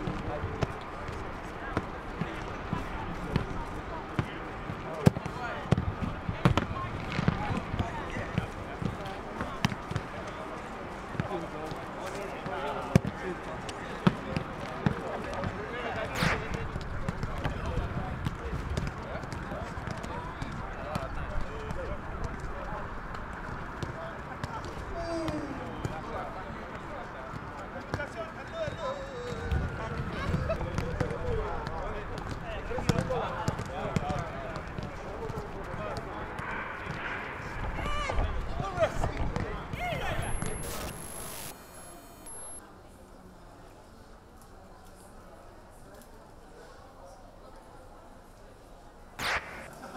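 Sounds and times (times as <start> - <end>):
players' indistinct voices: 0.0 - 43.3, 49.2 - 49.9
players calling and shouting: 35.4 - 42.6.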